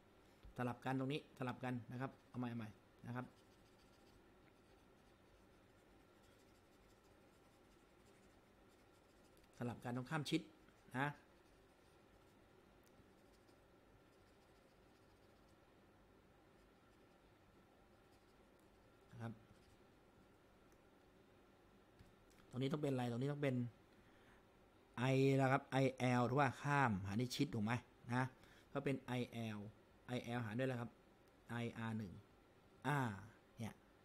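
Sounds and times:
stylus scratching on a tablet: 0:01.5 - 0:15.8, 0:16.4 - 0:19.9.

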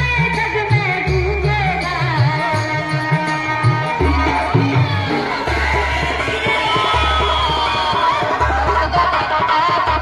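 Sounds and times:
devotional music over loudspeakers: 0:00.0 - 0:10.0
crowd noise: 0:03.0 - 0:10.0.

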